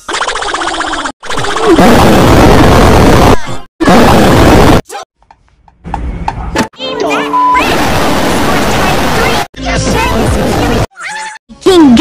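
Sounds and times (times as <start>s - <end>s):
distorted voice-like blasts: 1.3s - 5.0s, 7.6s - 10.9s.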